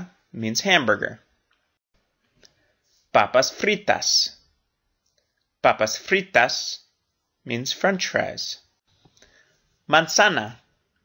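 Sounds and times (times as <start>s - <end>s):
person speaking: 0.0s - 1.3s, 2.4s - 4.6s, 5.6s - 10.7s.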